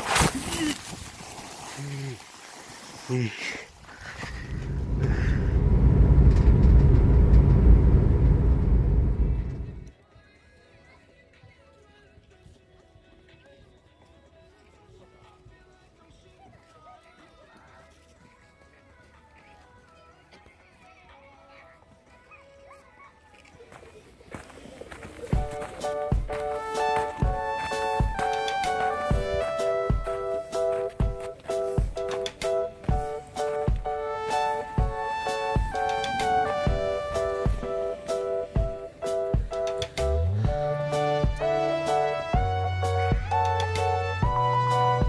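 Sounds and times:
ski sliding over snow: 0.0s - 5.4s
music with heavy beat: 25.4s - 45.0s.

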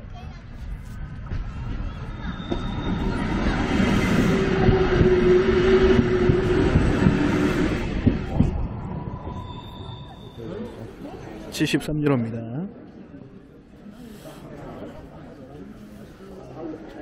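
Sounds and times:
train rumbling past: 0.4s - 11.5s.

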